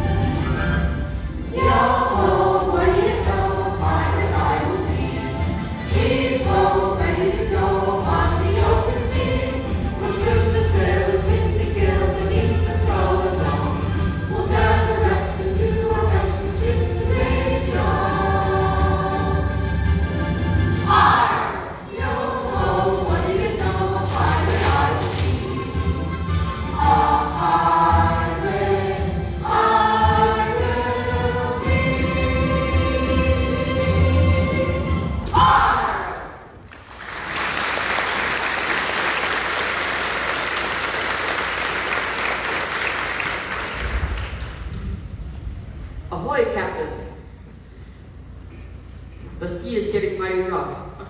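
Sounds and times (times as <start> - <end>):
young chorus singing: 1.4 - 19.8, 20.8 - 36.4.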